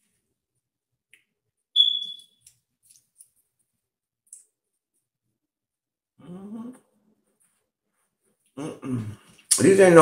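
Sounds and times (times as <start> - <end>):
short high-pitched tone: 1.8 - 2.2.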